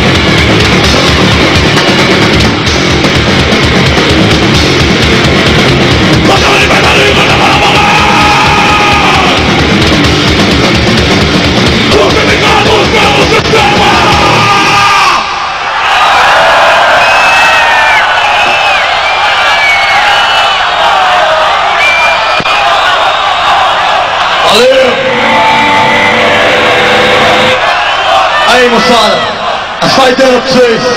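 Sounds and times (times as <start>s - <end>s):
live metal band playing: 0.0s - 15.0s, 24.8s - 27.6s
crowd cheering and yelling: 3.0s - 30.9s
man shouting: 6.2s - 9.6s, 11.9s - 15.4s.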